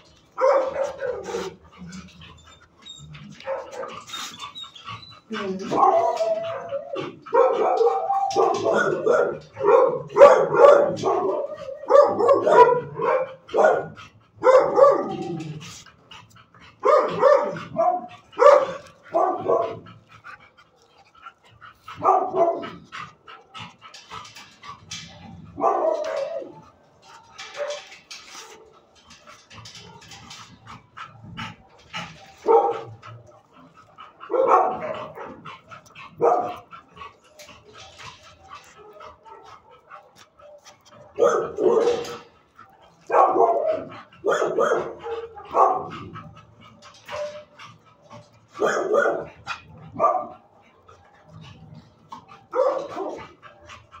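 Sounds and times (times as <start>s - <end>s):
dog barking: 0.4s - 1.6s, 3.4s - 4.0s, 5.6s - 15.4s, 16.8s - 19.8s, 22.0s - 22.6s, 25.6s - 26.5s, 32.4s - 32.9s, 34.3s - 35.4s, 36.2s - 36.6s, 40.4s - 42.2s, 43.1s - 46.0s, 48.6s - 49.3s, 49.9s - 50.4s, 52.5s - 53.2s.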